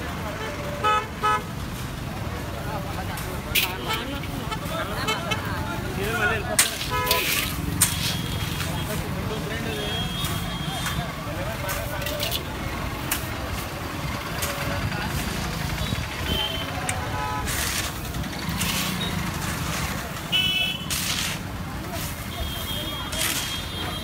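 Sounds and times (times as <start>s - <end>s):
traffic rumble: 0.0s - 24.0s
shovels scraping and knocking: 3.1s - 15.9s, 16.8s - 22.3s, 23.0s - 24.0s.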